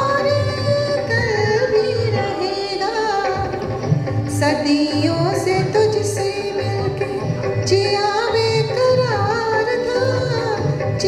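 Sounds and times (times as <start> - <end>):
backing music with drum beat: 0.0 - 11.0
woman singing into a microphone: 0.0 - 11.0.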